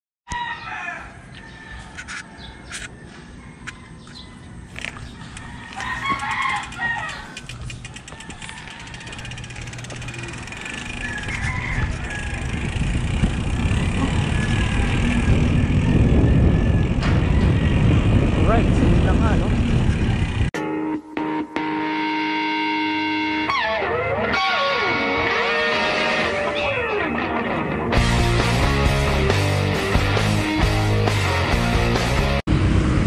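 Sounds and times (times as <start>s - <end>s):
rooster crowing: 0.3s - 12.9s, 14.0s - 18.1s
wind buffeting microphone: 5.0s - 20.6s.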